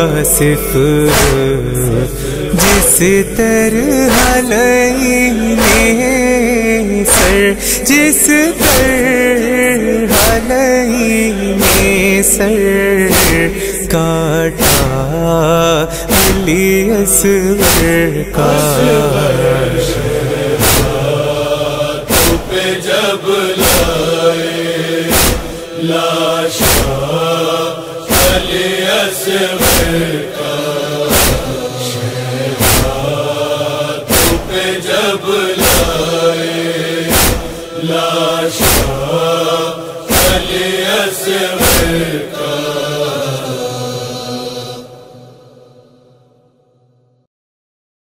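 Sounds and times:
rhythmic chest-beating: 0.0 - 43.2
men chanting a lament: 0.0 - 46.1.

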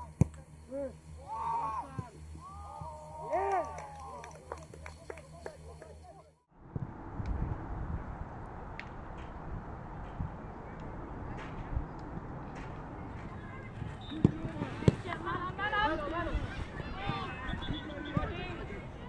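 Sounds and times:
players calling out: 0.0 - 6.3
wind rumbling on microphone: 6.6 - 19.0
footballs being kicked: 14.0 - 15.2.

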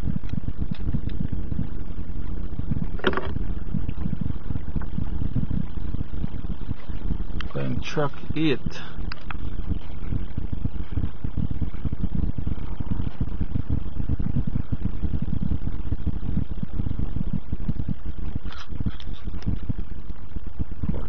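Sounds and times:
subwoofer bass rumble: 0.0 - 21.0.

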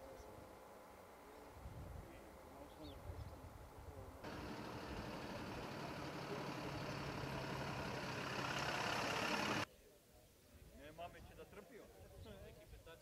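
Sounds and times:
road noise: 4.2 - 9.7
truck diesel engines: 4.2 - 9.7.

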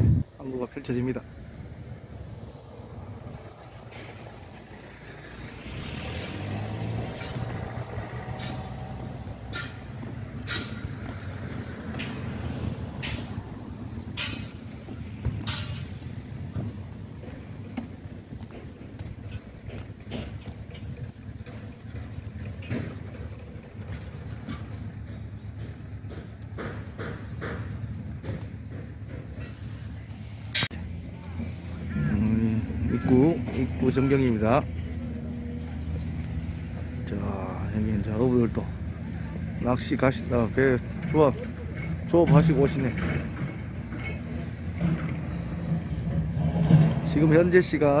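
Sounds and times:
vehicle engines rumbling: 0.0 - 48.0
sharp clicks and knocks: 6.5 - 29.6.

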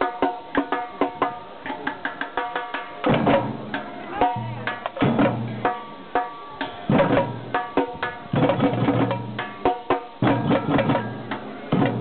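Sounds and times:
sticks striking small hand drums: 0.0 - 12.0
bass drum: 3.0 - 6.1, 6.8 - 12.0.

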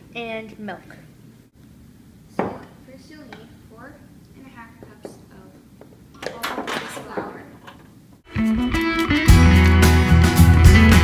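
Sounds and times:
low room noise: 0.0 - 8.3
dish knocking on table: 2.4 - 2.8, 6.2 - 7.8.

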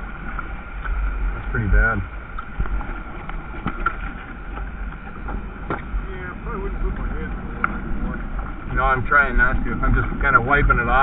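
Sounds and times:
low wind rumble on microphone: 0.0 - 11.0.

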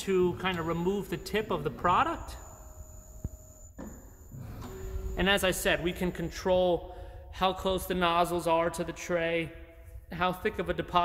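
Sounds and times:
machine hum: 0.0 - 10.1.

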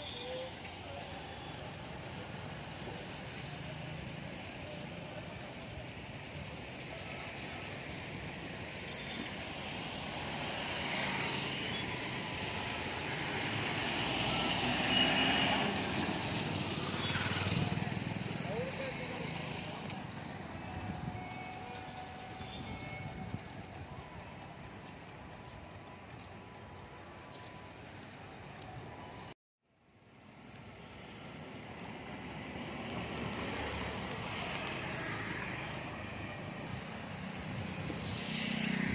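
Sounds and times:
light street traffic: 0.0 - 38.9
brief high beep: 26.5 - 29.3.

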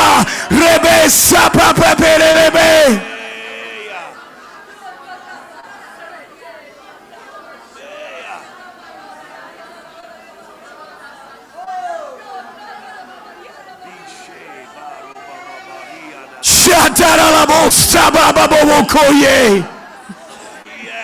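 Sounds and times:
many people praying aloud: 0.0 - 21.0.

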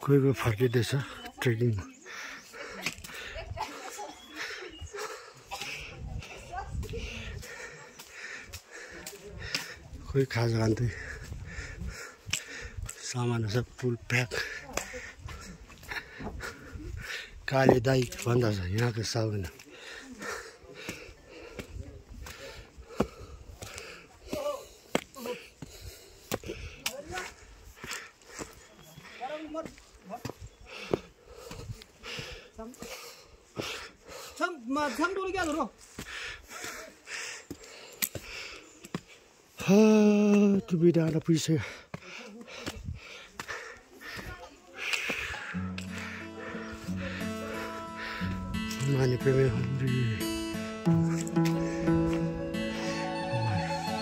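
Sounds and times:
footsteps on stone path: 0.0 - 54.0
person breathing hard: 2.0 - 10.0, 10.9 - 13.0, 14.4 - 17.5, 19.6 - 29.3, 30.6 - 34.4, 35.8 - 39.3, 41.6 - 48.8, 50.0 - 54.0
indistinct voices: 44.2 - 54.0.

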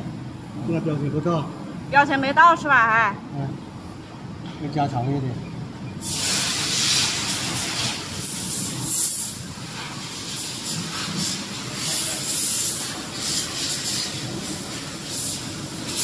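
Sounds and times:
steady hiss: 6.0 - 16.0
surges of high hiss: 6.0 - 16.0.

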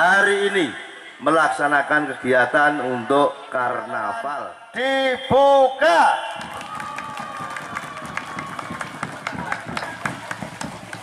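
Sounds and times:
crowd applause: 6.4 - 11.0
murmur of voices: 7.5 - 11.0.

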